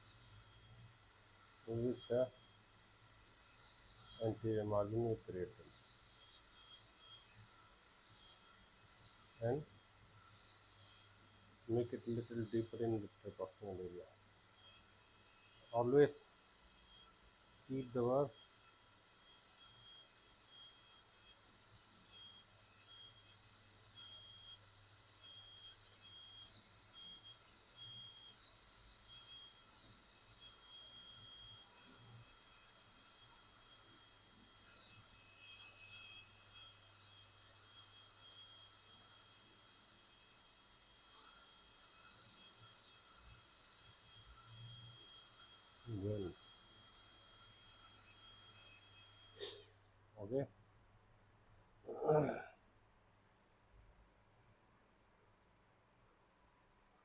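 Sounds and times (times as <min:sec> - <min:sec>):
dental drill whine: 0:00.0 - 0:50.0, 0:51.9 - 0:52.5.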